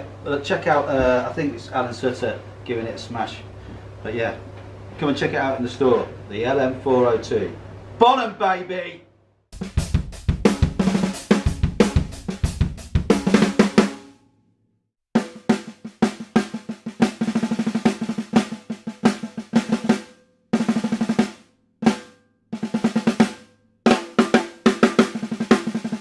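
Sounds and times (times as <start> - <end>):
bass drum hits: 9.6 - 13.2
snare drum played with sticks: 9.6 - 14.0, 15.2 - 26.0.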